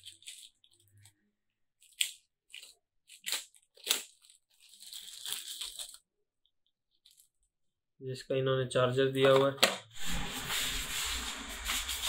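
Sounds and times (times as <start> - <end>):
paper wrapping crinkling: 0.0 - 1.2, 1.8 - 6.1.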